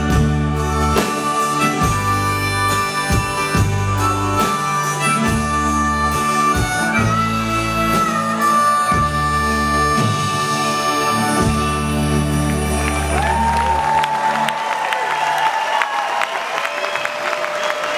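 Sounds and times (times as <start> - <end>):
harmonica melody: 0.0 - 14.5
live band drums and bass: 0.0 - 14.5.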